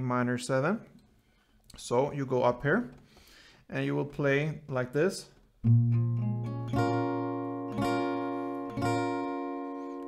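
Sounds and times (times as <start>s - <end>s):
acoustic guitar chord: 5.6s - 10.0s.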